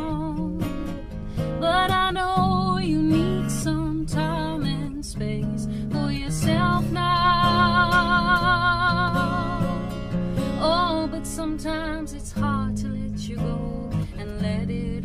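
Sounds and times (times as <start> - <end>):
strummed acoustic guitar: 0.0 - 15.0.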